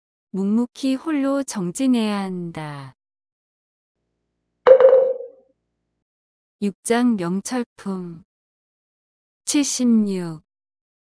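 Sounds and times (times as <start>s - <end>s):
ringing chime sound effect: 4.7s - 5.3s.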